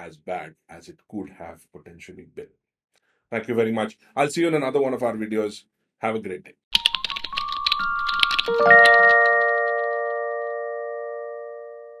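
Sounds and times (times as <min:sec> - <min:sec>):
bell-like chime chord: 0:08.4 - 0:12.0.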